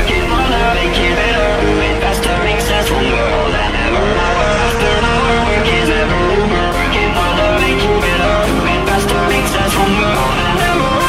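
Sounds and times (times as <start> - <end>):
background music: 0.0 - 11.0
car engine revving hard: 0.0 - 11.0.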